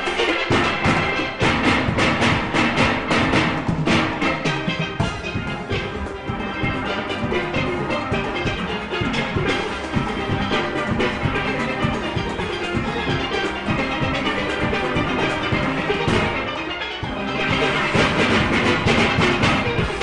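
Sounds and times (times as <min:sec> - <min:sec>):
steel band playing: 0:00.0 - 0:20.0.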